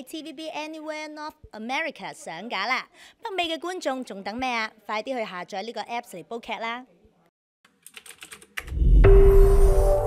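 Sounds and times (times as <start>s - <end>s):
keyboard typing clicks: 7.8s - 8.8s
electronic music: 8.6s - 10.0s
deep low whoosh: 8.7s - 10.0s
held synth note: 8.7s - 10.0s.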